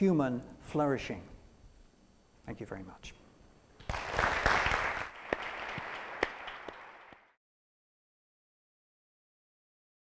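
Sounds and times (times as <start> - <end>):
sharp single claps: 3.8 - 7.3
audience applauding: 3.8 - 7.4.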